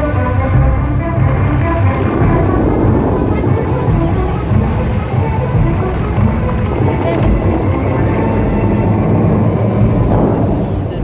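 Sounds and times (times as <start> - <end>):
water jets rushing: 0.0 - 11.0.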